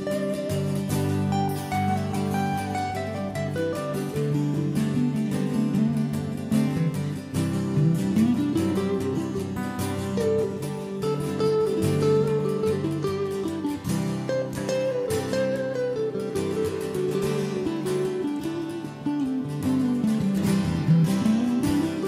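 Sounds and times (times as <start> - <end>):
acoustic guitars strumming: 0.0 - 22.0
lead guitar melody: 0.0 - 22.0.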